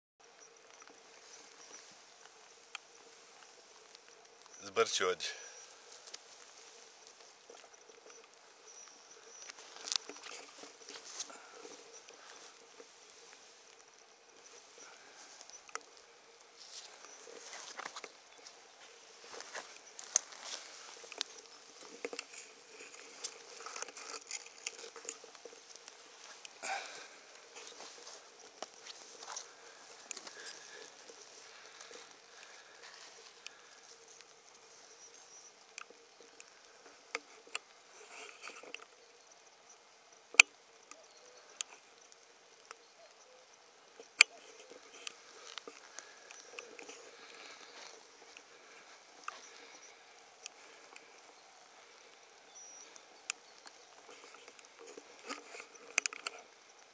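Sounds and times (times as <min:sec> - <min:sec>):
footsteps on dry leaves and grass: 0:08.4 - 0:34.8, 0:44.7 - 0:52.2.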